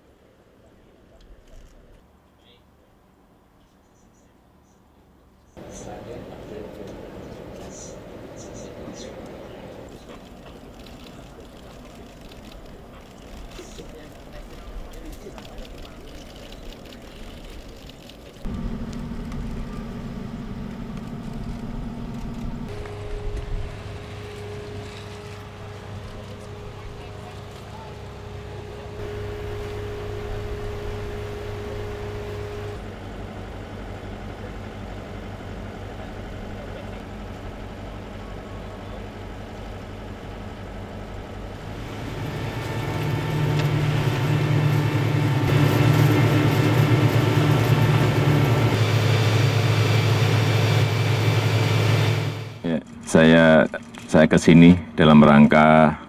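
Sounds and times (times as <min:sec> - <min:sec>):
people talking: 0:05.6 - 0:17.8, 0:23.2 - 0:32.8, 0:35.9 - 0:37.1, 0:52.6 - 0:56.0
heavy machinery engine running: 0:05.6 - 0:54.2.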